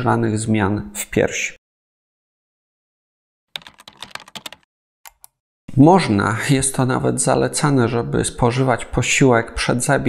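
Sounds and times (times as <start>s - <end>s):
keyboard key clicks: 3.6s - 5.4s.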